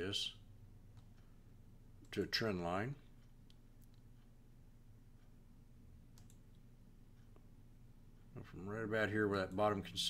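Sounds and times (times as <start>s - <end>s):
low steady hum: 0.0s - 10.0s
computer mouse clicks: 6.1s - 6.6s.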